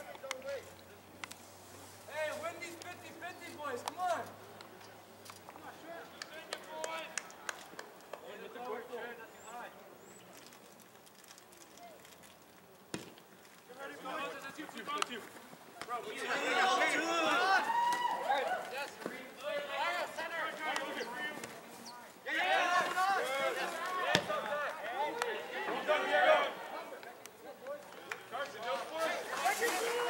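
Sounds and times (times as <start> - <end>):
light crackles: 10.0 - 16.0
players shouting: 15.8 - 30.0
soccer ball thud: 24.1 - 24.4.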